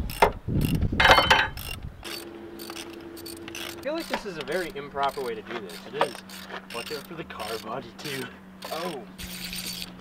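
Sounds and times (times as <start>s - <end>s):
ratchet wrench clicking: 0.0s - 10.0s.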